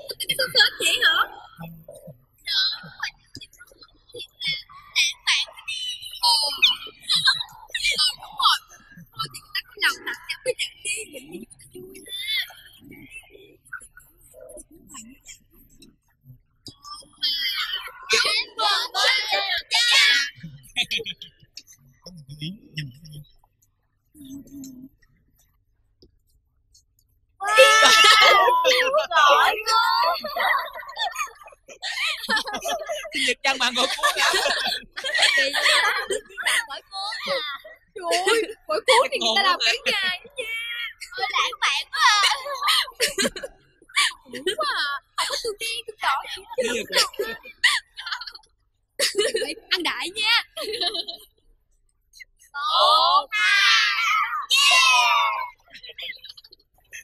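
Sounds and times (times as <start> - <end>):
high-pitched shrieking voices: 16.7 - 21.2, 27.4 - 48.4, 52.5 - 57.0
girls laughing and squealing: 17.2 - 21.0, 27.4 - 48.4, 49.0 - 51.3, 52.6 - 56.4.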